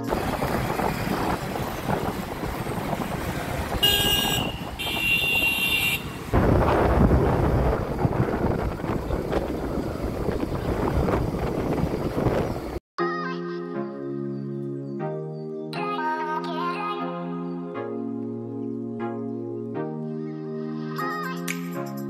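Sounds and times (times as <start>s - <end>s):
traffic noise: 0.0s - 12.8s
wind buffeting microphone: 0.0s - 12.8s
vehicle horn: 3.7s - 6.4s.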